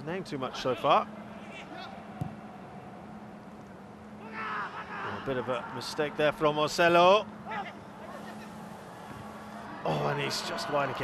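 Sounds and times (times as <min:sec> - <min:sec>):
ball kick: 0:02.2 - 0:02.4.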